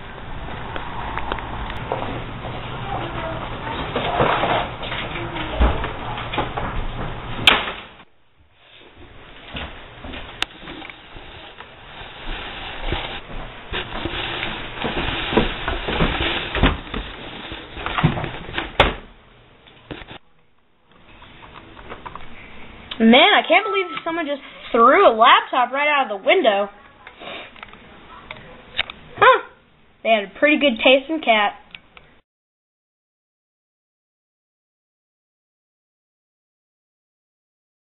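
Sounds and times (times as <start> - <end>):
outdoor noise: 0.0 - 24.8.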